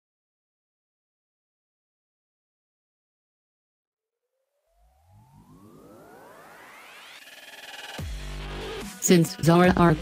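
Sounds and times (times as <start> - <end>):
synthesized rising sweep: 4.4 - 9.0
intro music: 4.7 - 10.0.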